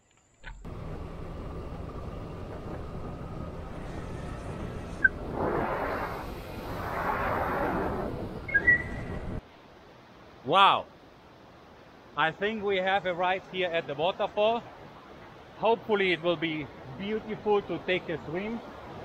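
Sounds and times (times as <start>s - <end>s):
motorbike engine rumble: 0.4s - 5.4s
wind on microphone: 2.8s - 9.4s.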